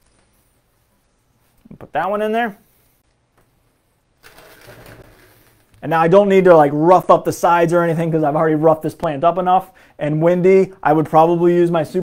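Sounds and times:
potting soil rustling: 0:04.2 - 0:06.8.

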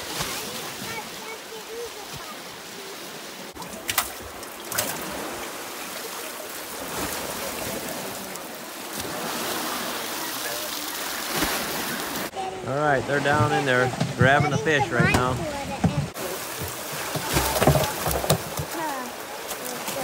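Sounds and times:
river water rushing: 0:00.0 - 0:20.0
water spilling off frame: 0:16.1 - 0:20.0.

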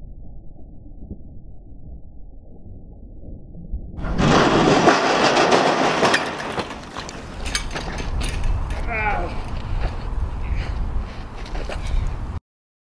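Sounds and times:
bicycle crashing in dirt: 0:04.0 - 0:09.6
dirt and gravel scraping: 0:04.0 - 0:12.4
falling grit ticking: 0:04.0 - 0:12.4
person crying out: 0:08.8 - 0:09.4.

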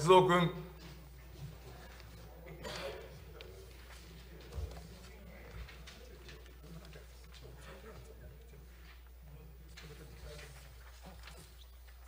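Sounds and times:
paper rustling: 0:03.4 - 0:12.0.

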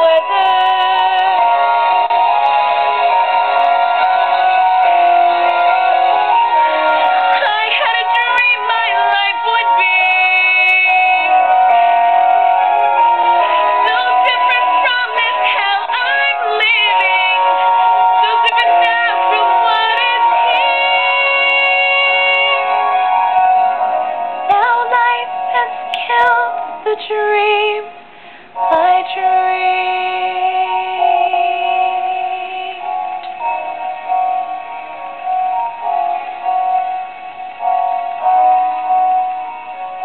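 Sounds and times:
woman singing a long note: 0:00.0 - 0:03.1, 0:07.2 - 0:12.1, 0:12.9 - 0:23.3, 0:24.5 - 0:28.0, 0:28.6 - 0:34.2
ballad backing music: 0:00.0 - 0:40.0
woman singing solo: 0:07.4 - 0:11.4, 0:13.4 - 0:22.8.

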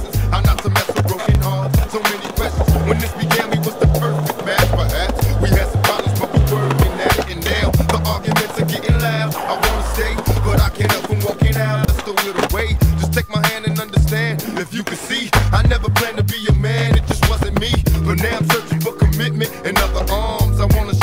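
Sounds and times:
hip-hop backing track: 0:00.0 - 0:21.0
skateboard wheels rolling on concrete: 0:00.0 - 0:21.0.

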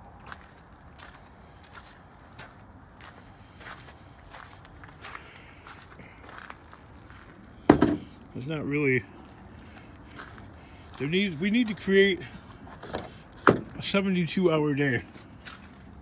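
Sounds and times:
footsteps on gravel: 0:00.0 - 0:12.8, 0:14.9 - 0:16.0
loud thump: 0:07.7 - 0:08.1.

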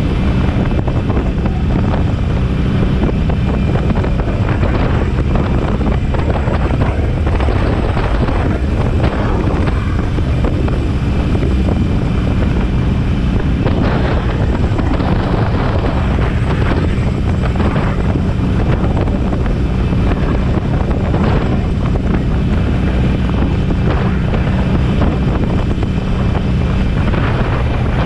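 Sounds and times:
motorcycle engine running: 0:00.0 - 0:28.0
wind buffeting microphone: 0:00.0 - 0:28.0.

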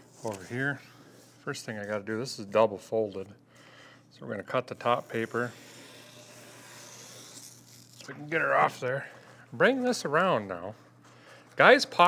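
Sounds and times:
knife blade scratching paper: 0:04.8 - 0:08.1.

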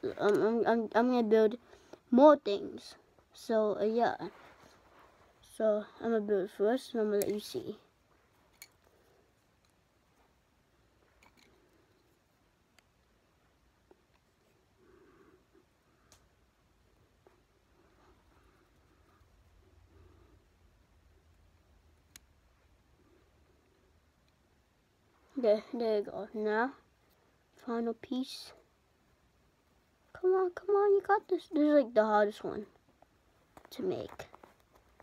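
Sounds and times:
faint handling noise: 0:04.1 - 0:05.5, 0:06.8 - 0:14.8, 0:32.6 - 0:35.0.

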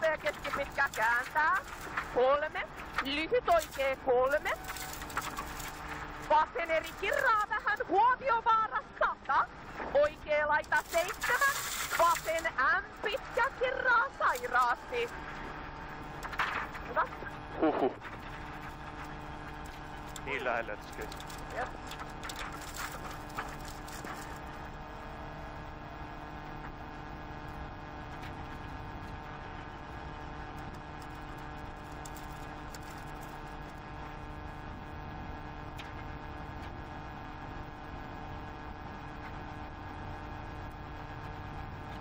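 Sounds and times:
car engine hum inside cabin: 0:00.0 - 0:42.0.

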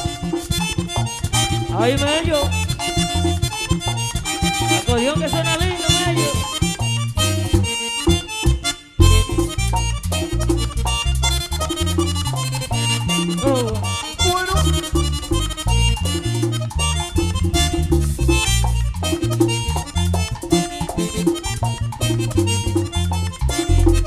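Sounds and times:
accordion: 0:00.0 - 0:24.0
band playing dance music: 0:00.0 - 0:24.0
bass and percussion beat: 0:00.0 - 0:24.0.

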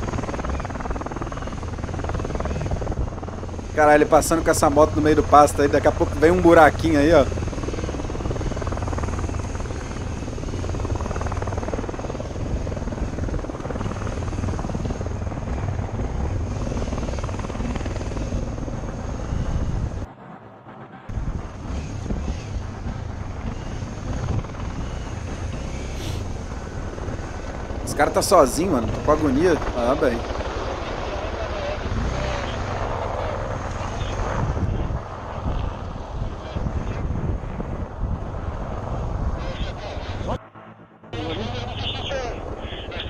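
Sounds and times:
wind buffeting microphone: 0:00.0 - 0:20.1, 0:21.1 - 0:40.4.

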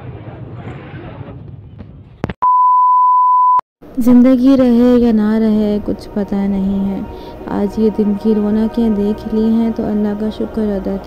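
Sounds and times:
steady test-tone beep: 0:02.4 - 0:03.6.

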